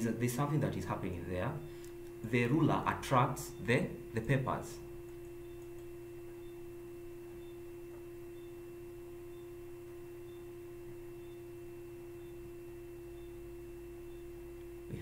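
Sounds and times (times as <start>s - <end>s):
steady hum: 0.0s - 15.0s.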